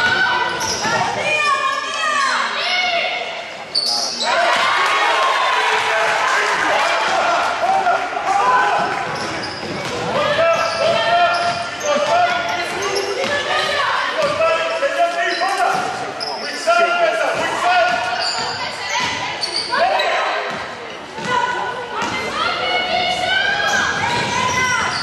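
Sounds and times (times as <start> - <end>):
shoes squeaking: 9.1 - 13.9, 17.8 - 20.3.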